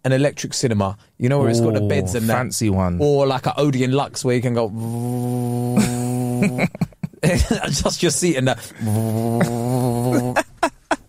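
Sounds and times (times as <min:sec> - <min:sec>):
man humming like a motor: 0:04.8 - 0:06.8, 0:08.8 - 0:10.6
man laughing: 0:05.7 - 0:07.9, 0:08.8 - 0:11.0.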